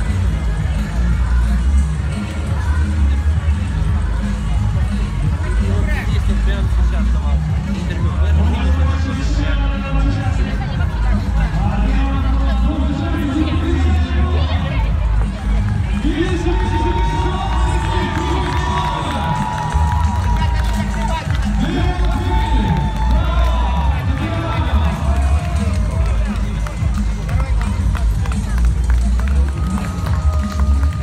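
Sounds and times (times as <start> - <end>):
crowd noise: 0.0 - 31.0
man announcing over loudspeakers: 5.3 - 28.6.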